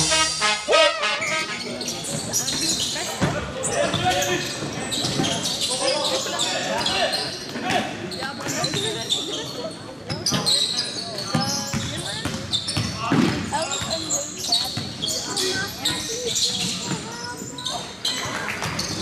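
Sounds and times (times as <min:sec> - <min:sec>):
basketball bouncing on court: 0:02.1 - 0:05.5, 0:11.3 - 0:15.1.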